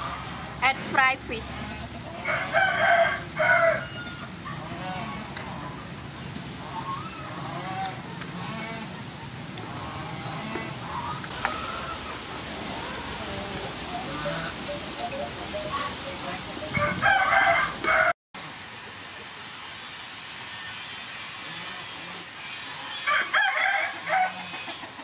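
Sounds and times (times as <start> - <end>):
rooster crowing: 2.2 - 4.2, 16.6 - 18.1, 23.0 - 24.6.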